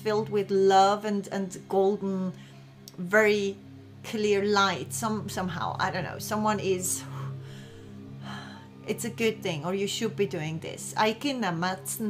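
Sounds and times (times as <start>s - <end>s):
soft background music: 0.0s - 12.0s
breath: 2.4s - 2.8s, 7.3s - 8.7s.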